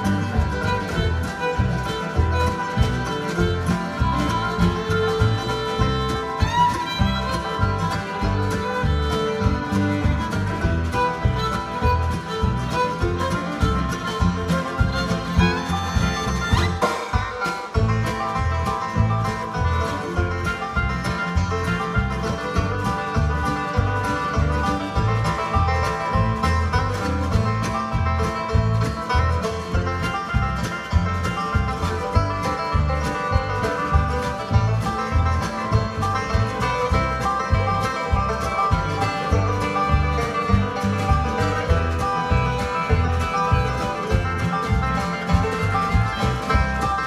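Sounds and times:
acoustic guitar: 0.0s - 47.0s
banjo picking: 0.0s - 47.0s
fiddle: 0.0s - 47.0s
upright bass: 0.0s - 47.0s.

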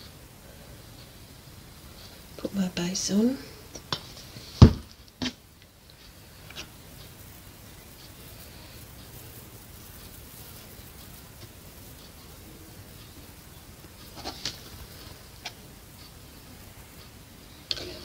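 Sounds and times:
faint low hum: 0.0s - 18.0s.

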